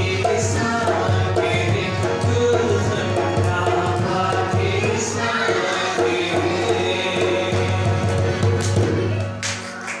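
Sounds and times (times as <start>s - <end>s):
harmonium: 0.0s - 9.8s.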